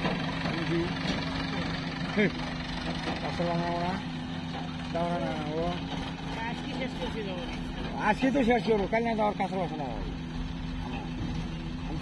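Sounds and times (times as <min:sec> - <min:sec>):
diesel engines running: 0:00.0 - 0:12.0
voices talking: 0:00.0 - 0:12.0.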